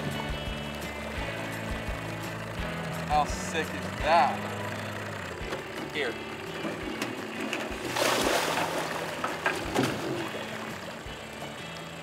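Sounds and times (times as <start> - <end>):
outboard motor running slowly: 0.0 - 12.0
splash in water: 7.8 - 10.3.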